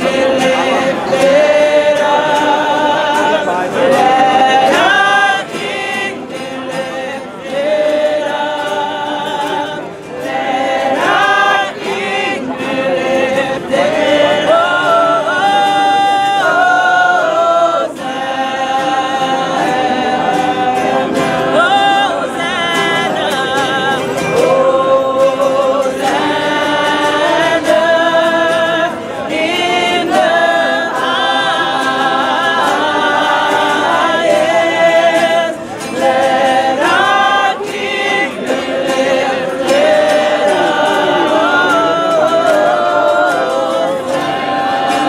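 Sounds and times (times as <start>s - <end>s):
choir singing in harmony: 0.0s - 45.0s.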